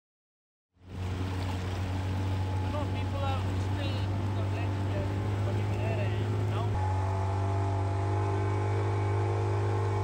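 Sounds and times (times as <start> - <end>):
boat motor humming: 0.8 - 10.0.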